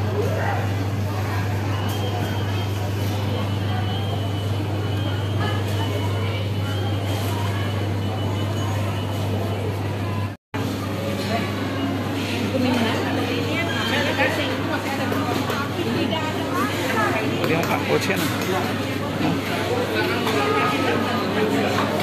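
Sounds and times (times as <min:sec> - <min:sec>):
indistinct voices of shoppers: 0:00.0 - 0:22.0.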